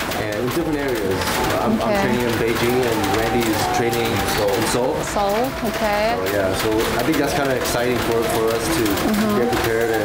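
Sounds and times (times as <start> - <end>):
man speaking: 0.2 - 5.0, 6.2 - 10.0.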